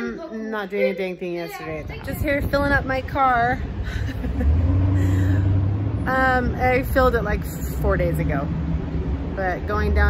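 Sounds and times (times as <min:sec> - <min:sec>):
vehicle engine rumbling: 0:01.6 - 0:10.0.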